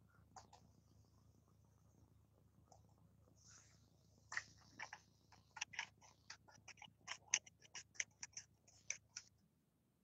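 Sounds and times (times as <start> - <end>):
computer keyboard typing: 4.8 - 9.3.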